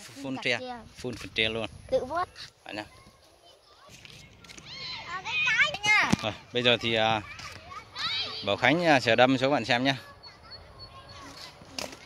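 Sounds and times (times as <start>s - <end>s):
distant children's voices: 1.9s - 12.0s.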